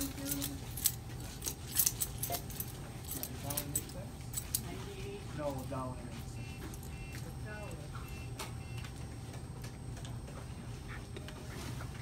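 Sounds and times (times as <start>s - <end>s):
light clicks and jingles: 0.0s - 8.9s.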